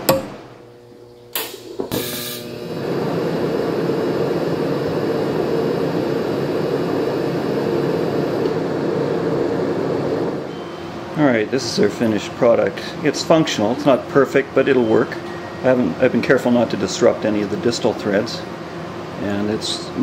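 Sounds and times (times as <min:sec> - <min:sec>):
welding arc buzzing hiss: 0:00.6 - 0:10.4.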